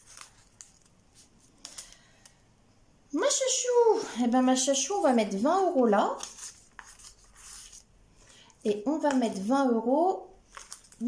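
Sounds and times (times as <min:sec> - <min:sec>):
paper rustling: 0:00.0 - 0:02.4, 0:06.0 - 0:09.4, 0:10.4 - 0:11.0.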